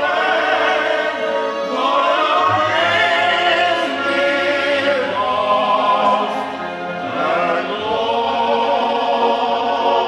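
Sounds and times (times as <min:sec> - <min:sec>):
men singing in harmony: 0:00.0 - 0:10.0.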